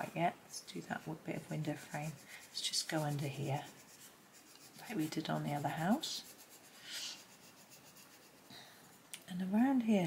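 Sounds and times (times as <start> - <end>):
pencil scratching on paper: 1.0 - 9.1.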